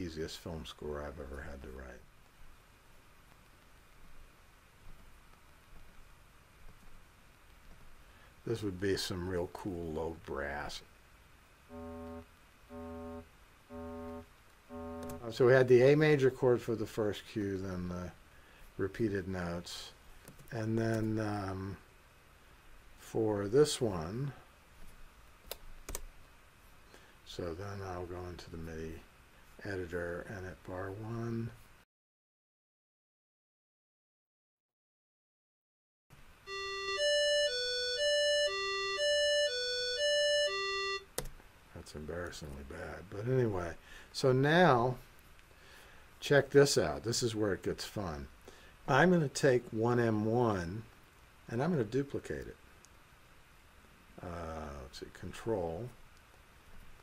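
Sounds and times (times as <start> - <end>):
repeated synthesizer note: 11.7 - 15.3
synthesizer playing sequenced notes: 11.7 - 15.3, 36.5 - 41.1.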